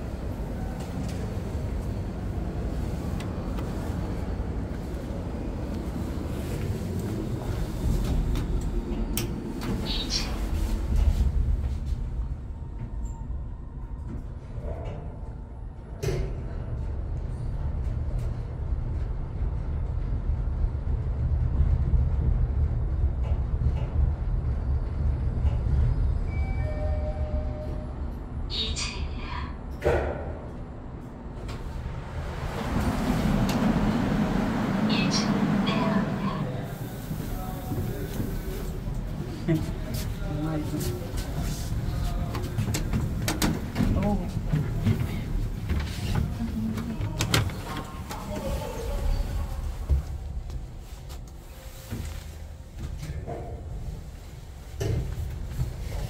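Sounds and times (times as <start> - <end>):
elevator low rumble: 0.0 - 56.0.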